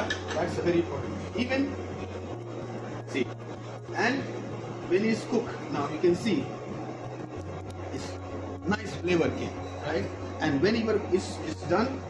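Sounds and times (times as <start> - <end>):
kitchen equipment humming: 0.0 - 12.0.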